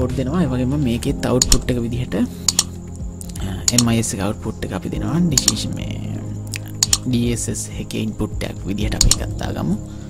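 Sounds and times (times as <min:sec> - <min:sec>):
computer mouse clicks: 0:01.4 - 0:01.6, 0:02.5 - 0:03.9, 0:05.3 - 0:05.6, 0:06.5 - 0:07.1, 0:09.0 - 0:09.3.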